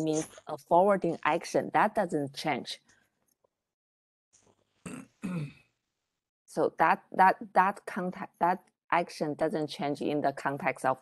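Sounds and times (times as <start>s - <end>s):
person clearing throat: 4.9s - 5.6s.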